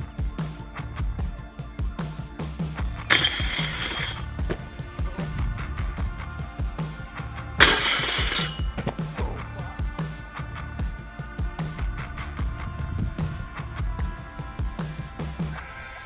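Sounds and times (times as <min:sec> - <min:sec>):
rock music with steady beat: 0:00.0 - 0:16.0
board grinding metal rail: 0:03.1 - 0:05.3, 0:07.6 - 0:09.1.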